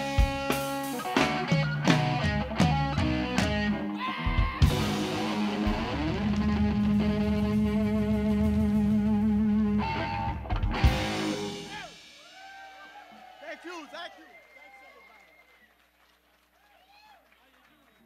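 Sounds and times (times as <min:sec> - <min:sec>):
live rock band playing: 0:00.0 - 0:13.3.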